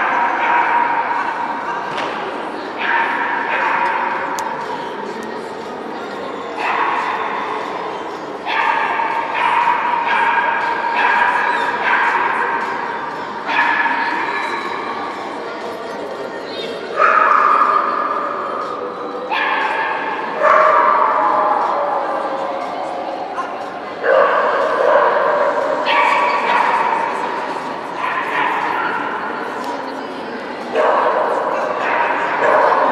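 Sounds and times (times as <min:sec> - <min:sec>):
voices in a hall: 0:00.0 - 0:32.9.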